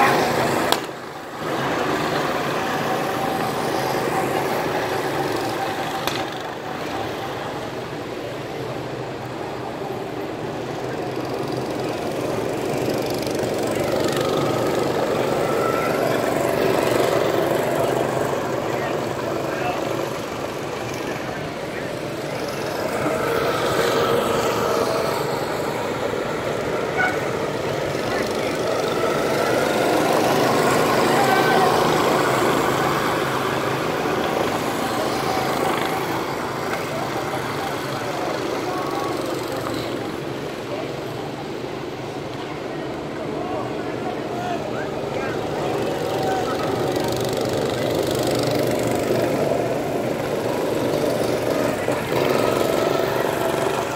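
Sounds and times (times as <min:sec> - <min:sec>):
go-kart engines passing: 0:00.0 - 0:53.9.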